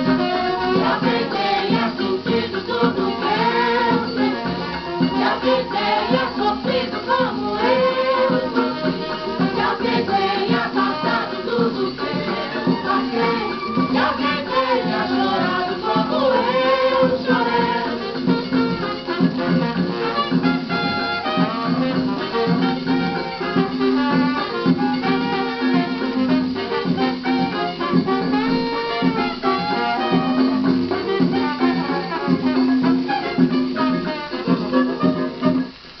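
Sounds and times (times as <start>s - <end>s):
old samba record with singer: 0.0s - 36.0s
quiet background noise: 0.0s - 36.0s.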